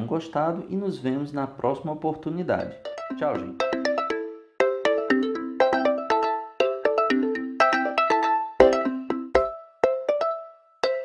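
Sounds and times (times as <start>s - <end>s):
bright struck-note melody: 2.6s - 11.0s.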